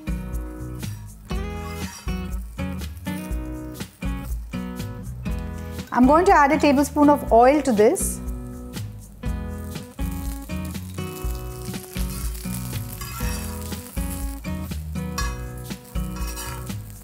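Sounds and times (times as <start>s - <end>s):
background music: 0.0s - 17.0s
food sizzling in oil: 0.0s - 17.0s
metal spatula stirring: 1.4s - 3.4s, 11.2s - 14.4s, 15.1s - 17.0s.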